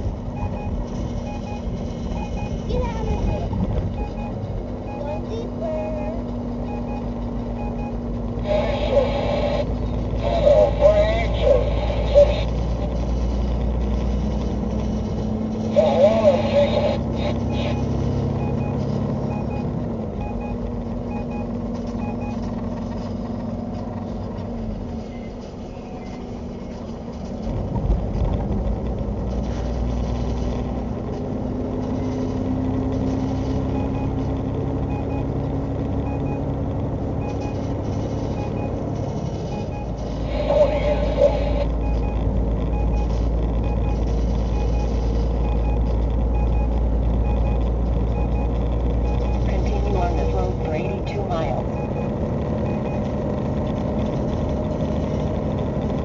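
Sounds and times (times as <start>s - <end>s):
diesel engine droning: 0.0s - 56.0s
road noise: 0.0s - 56.0s
high repeating beep: 0.4s - 9.0s, 15.8s - 22.4s, 33.6s - 34.2s, 34.8s - 35.4s, 36.0s - 36.6s, 38.3s - 38.9s, 39.5s - 53.1s.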